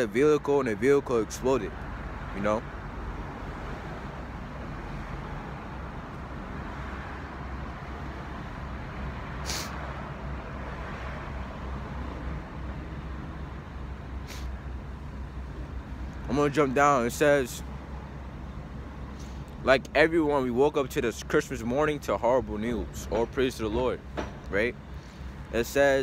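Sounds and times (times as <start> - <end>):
road traffic rumble: 0.0 - 26.0
short sharp noises: 9.4 - 9.9.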